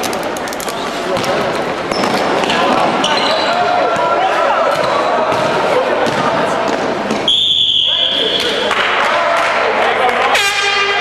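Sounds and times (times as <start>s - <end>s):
players' voices: 0.0s - 11.0s
sneakers squeaking: 0.7s - 8.7s
basketball bouncing on court: 1.1s - 7.3s.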